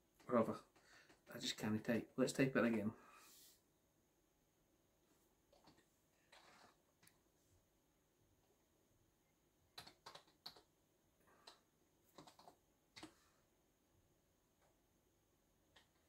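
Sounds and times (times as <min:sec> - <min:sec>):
faint keyboard typing: 0:05.5 - 0:07.2, 0:09.7 - 0:13.4.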